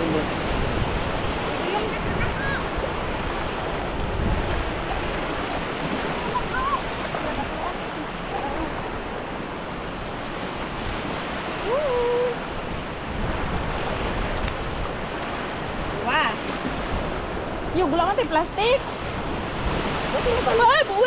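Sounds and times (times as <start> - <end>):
sea surf washing in: 0.0 - 21.0.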